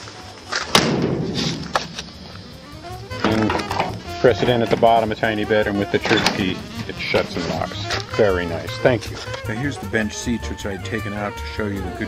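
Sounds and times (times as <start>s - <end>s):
door slam: 0.7s - 2.1s, 6.0s - 6.6s.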